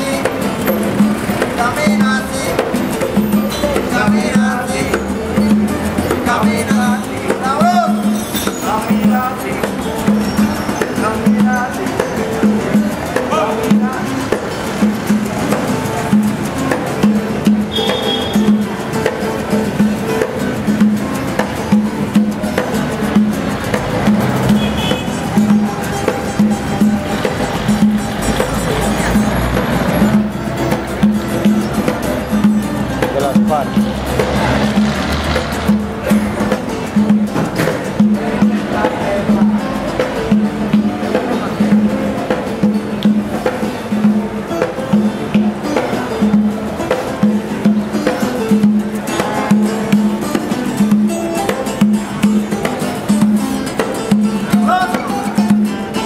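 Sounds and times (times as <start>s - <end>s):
acoustic guitars playing: 0.0s - 56.0s
hand drum beat: 0.0s - 56.0s.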